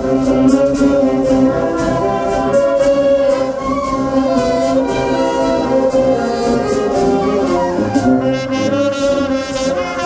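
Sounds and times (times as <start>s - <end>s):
wind band playing a tango: 0.0s - 10.0s.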